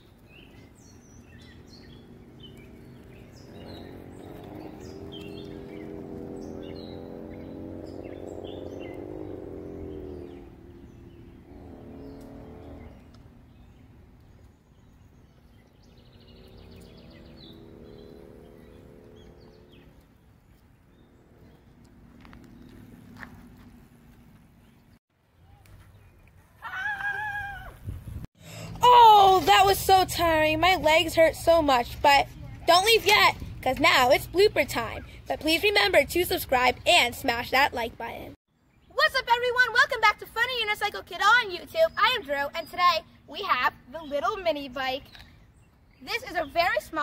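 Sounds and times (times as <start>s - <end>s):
birds chirping: 0.0s - 47.0s
mini bike motor running: 1.1s - 13.0s.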